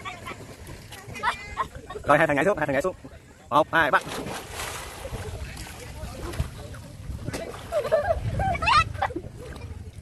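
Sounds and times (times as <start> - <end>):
water splashing and churning: 0.0 - 10.0.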